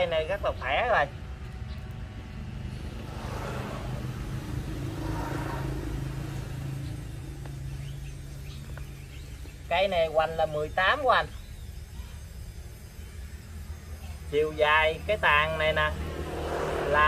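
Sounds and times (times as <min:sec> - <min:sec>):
vehicle engine humming: 0:00.0 - 0:17.0.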